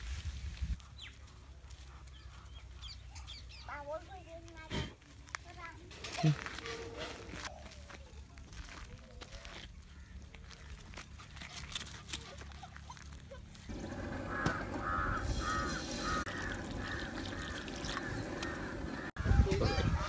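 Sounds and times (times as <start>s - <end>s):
water pouring into frying pan: 14.8s - 19.1s.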